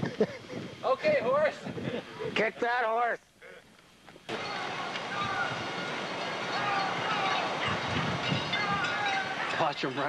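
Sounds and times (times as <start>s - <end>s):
high sliding calls: 4.3s - 10.0s
horse hooves galloping: 4.3s - 10.0s
steady rushing noise: 4.3s - 10.0s.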